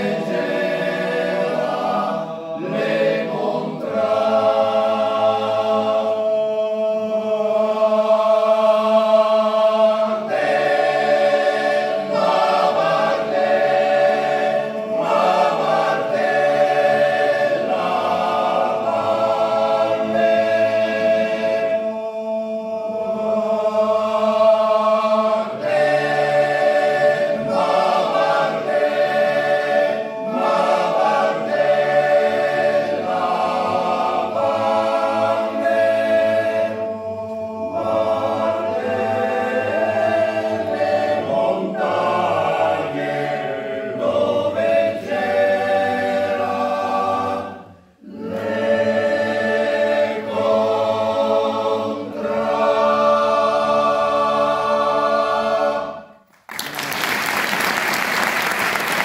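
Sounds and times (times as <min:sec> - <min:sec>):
choir singing a cappella: 0:00.0 - 0:56.3.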